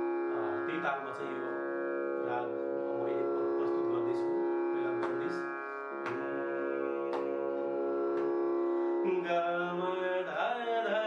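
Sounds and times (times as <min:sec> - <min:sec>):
harmonium drone: 0:00.0 - 0:11.0
soft plucked note: 0:02.2 - 0:08.9
man singing classical style: 0:09.0 - 0:11.0.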